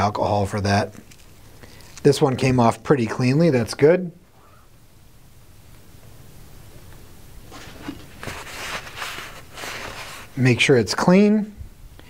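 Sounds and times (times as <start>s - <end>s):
paper towel rustling on metal: 7.4s - 10.6s.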